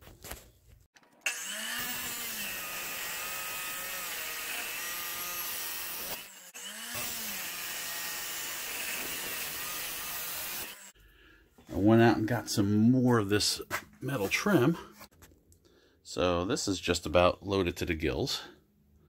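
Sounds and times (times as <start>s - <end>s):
chop saw cutting steel: 1.2s - 11.0s.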